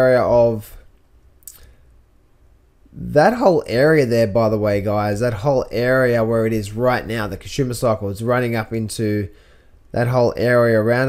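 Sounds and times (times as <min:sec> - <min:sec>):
faint low hum: 0:00.0 - 0:11.0
soft mouth sound: 0:01.4 - 0:01.8.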